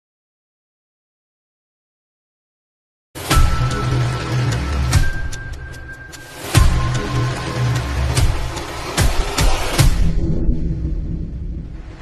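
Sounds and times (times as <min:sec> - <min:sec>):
deep cinematic boom: 0:09.8 - 0:12.0.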